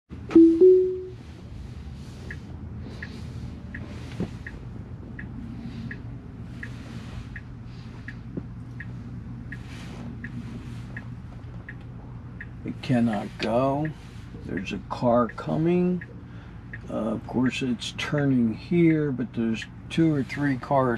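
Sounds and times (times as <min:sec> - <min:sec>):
low cabin hum: 0:00.1 - 0:20.9
turn signal ticking: 0:00.2 - 0:20.8
rising two-note chime: 0:00.3 - 0:01.1.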